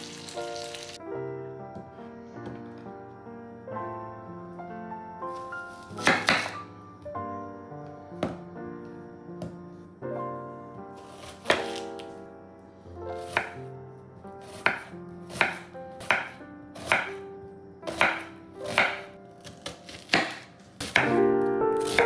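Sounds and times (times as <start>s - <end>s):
knife chopping onion on board: 5.9s - 6.6s, 11.0s - 12.0s, 13.2s - 13.6s, 14.4s - 17.2s, 17.9s - 21.1s, 21.8s - 22.0s.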